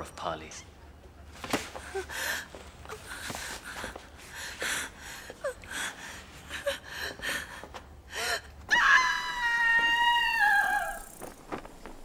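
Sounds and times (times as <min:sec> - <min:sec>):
long high-pitched cry: 0:08.7 - 0:11.1.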